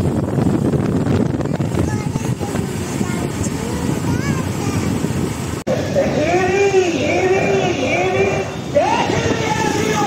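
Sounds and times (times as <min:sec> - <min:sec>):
motorcycle road noise: 0:00.0 - 0:10.0
wind buffeting microphone: 0:00.0 - 0:10.0.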